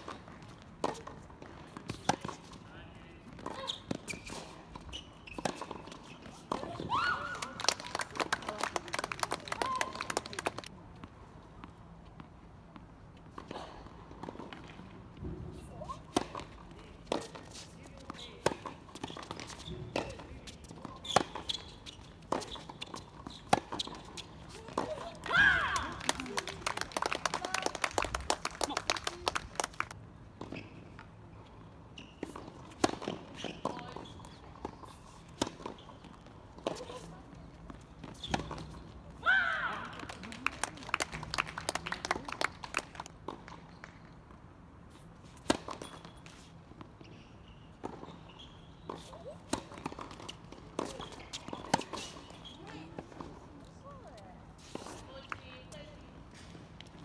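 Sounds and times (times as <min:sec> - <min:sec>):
racket striking tennis ball: 0:22.3 - 0:26.3.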